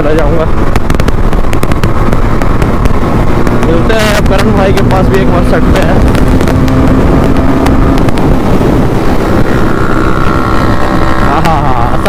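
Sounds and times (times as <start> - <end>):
motorcycle engine running: 0.0 - 12.0
wind rumble on microphone: 0.0 - 12.0.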